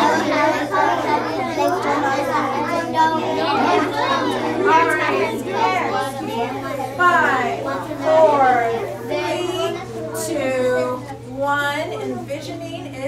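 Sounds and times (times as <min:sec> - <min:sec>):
children chattering: 0:00.0 - 0:13.0.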